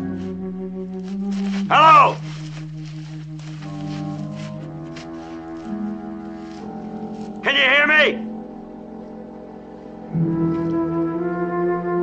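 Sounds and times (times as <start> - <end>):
orchestral film score: 0.0 - 12.0
man shouting: 1.7 - 2.2, 7.4 - 8.3.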